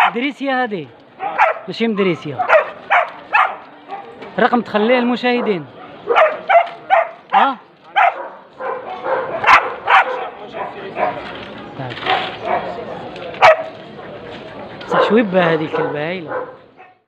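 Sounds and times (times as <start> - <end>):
dogs barking: 0.0 - 0.2, 1.2 - 4.2, 5.3 - 11.2, 12.0 - 12.8, 13.4 - 13.7, 14.9 - 17.0
crowd chatter: 0.0 - 17.0.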